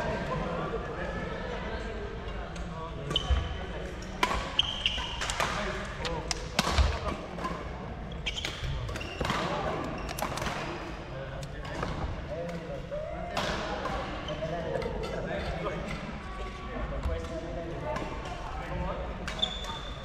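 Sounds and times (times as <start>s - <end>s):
shoes squeaking on court floor: 4.4s - 5.3s, 8.1s - 10.5s, 19.3s - 20.0s.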